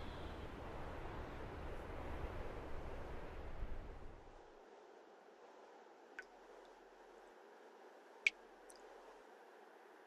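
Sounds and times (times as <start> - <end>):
wind rumble on microphone: 0.0 - 8.0.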